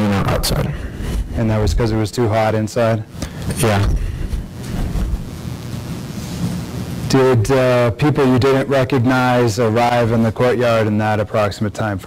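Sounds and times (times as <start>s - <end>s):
microphone rumbling noise: 3.7s - 7.1s.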